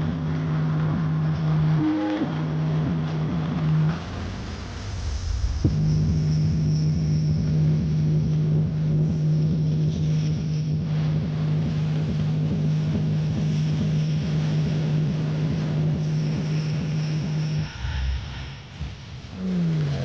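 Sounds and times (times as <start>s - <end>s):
deep bass tone from speakers: 0.0s - 20.0s.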